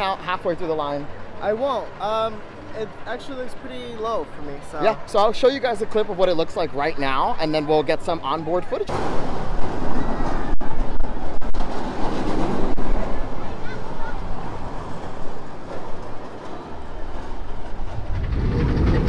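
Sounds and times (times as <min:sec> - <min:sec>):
roller coaster wheels clattering on rails: 0:08.8 - 0:19.0.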